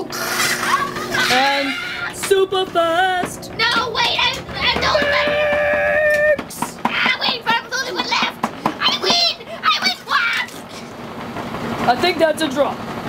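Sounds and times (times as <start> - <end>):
young voices shouting: 1.1 - 2.2, 3.6 - 10.7.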